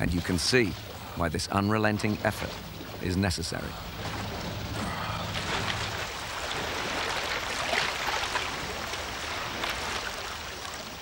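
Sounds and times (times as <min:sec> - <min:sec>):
sea water washing around jetty: 0:00.0 - 0:11.0.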